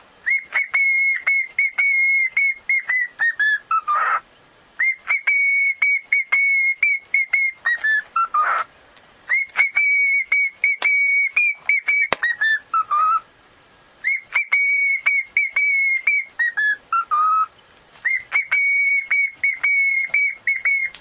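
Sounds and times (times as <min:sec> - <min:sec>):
cockatiel whistling a tune: 0:00.2 - 0:04.2, 0:04.8 - 0:08.7, 0:09.3 - 0:13.3, 0:14.0 - 0:21.0.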